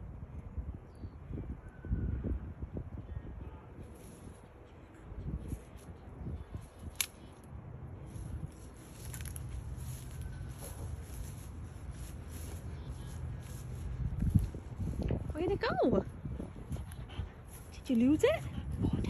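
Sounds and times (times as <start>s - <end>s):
wind rumble on microphone: 0.0s - 19.0s
dog rustling through grass: 8.0s - 15.0s.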